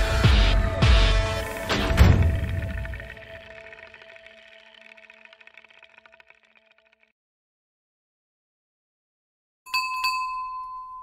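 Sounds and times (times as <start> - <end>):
small bell-like chime: 9.7 - 11.0.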